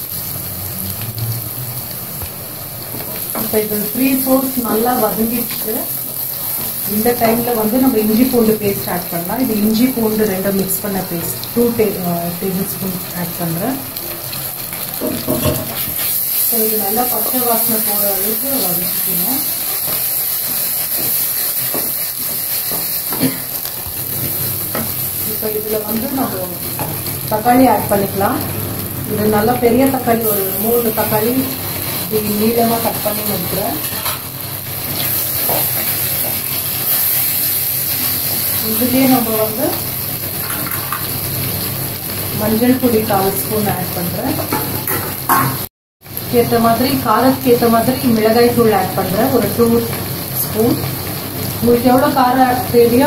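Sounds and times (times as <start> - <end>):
onions sizzling in oil: 0.0 - 53.0.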